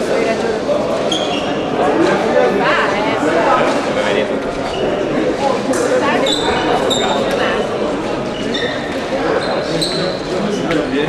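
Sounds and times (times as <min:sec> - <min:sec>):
murmur of voices: 0:00.0 - 0:11.0
shoes squeaking on floor: 0:01.0 - 0:01.8, 0:06.0 - 0:11.0.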